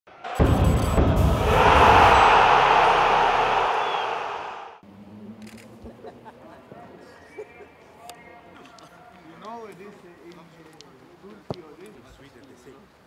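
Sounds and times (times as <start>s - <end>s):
deep hit: 0.1s - 4.7s
loud noisy swell: 0.1s - 4.8s.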